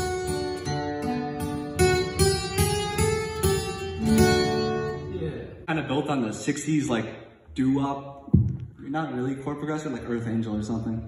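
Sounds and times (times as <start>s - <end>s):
acoustic guitar strumming: 0.0s - 5.4s
man talking: 5.0s - 11.0s.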